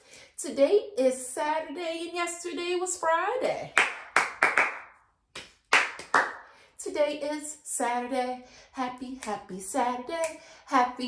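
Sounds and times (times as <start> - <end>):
person clapping hands: 3.8 - 6.5.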